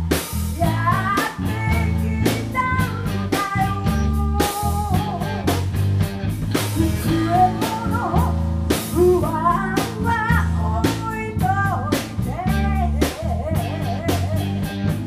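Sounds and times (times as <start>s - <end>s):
bass guitar: 0.0s - 15.0s
bending lead melody line: 0.0s - 15.0s
drum kit: 0.0s - 15.0s
electric guitar: 0.0s - 15.0s.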